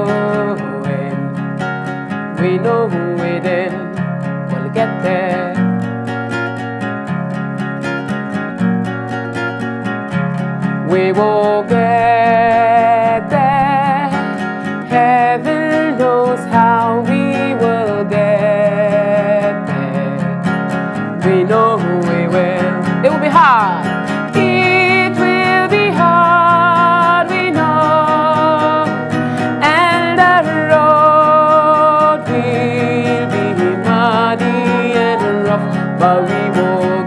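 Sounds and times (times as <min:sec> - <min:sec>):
woman singing with vibrato: 0:00.0 - 0:05.8, 0:10.8 - 0:37.0
acoustic guitar strumming: 0:00.0 - 0:37.0.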